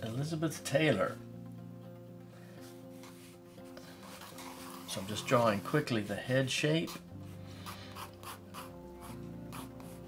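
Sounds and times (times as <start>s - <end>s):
soft background music: 0.0s - 10.0s
pencil scratching on paper: 6.8s - 10.0s.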